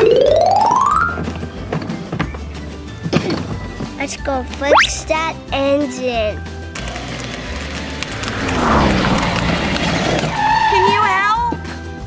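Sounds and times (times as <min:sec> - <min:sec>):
background music: 0:00.0 - 0:12.0
vehicle driving rushing noise: 0:07.7 - 0:10.7.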